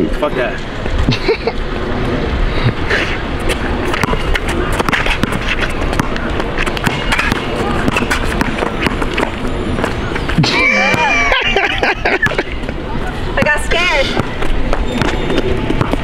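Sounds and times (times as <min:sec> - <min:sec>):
steady noisy rumble: 0:00.0 - 0:16.0
basketball bouncing: 0:03.5 - 0:11.2, 0:13.4 - 0:16.0
indistinct voices: 0:10.0 - 0:11.7.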